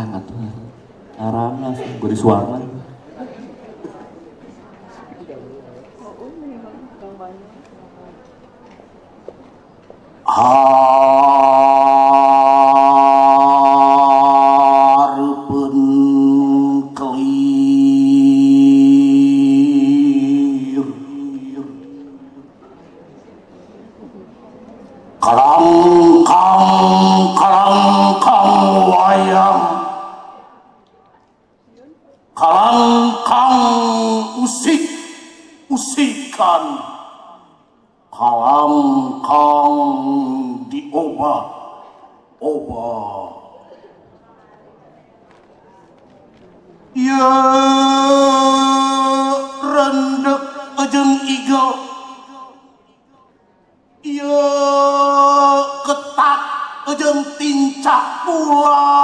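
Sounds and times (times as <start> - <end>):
man chanting long held notes: 10.3 - 22.5, 25.2 - 30.7, 32.4 - 37.5, 47.0 - 52.8, 54.0 - 59.0
man declaiming through pa: 25.2 - 30.8, 32.3 - 44.0, 47.0 - 53.0, 54.0 - 59.0.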